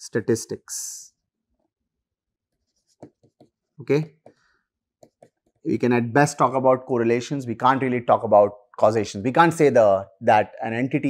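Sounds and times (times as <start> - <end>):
stylus writing on a tablet: 2.4 - 5.7.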